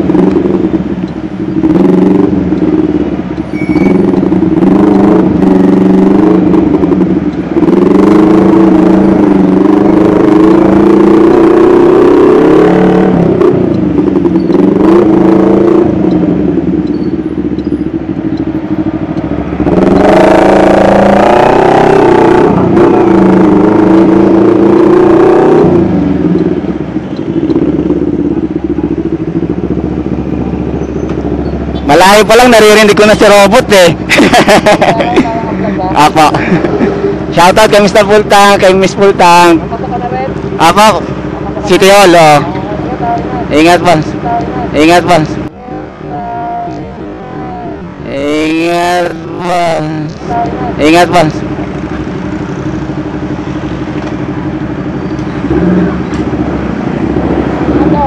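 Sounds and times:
motorcycle engine: 0.0 - 58.0.

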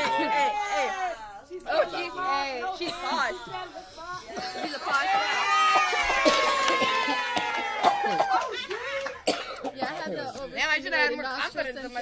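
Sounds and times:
people laughing: 2.9 - 10.3
man coughing: 9.2 - 10.1.

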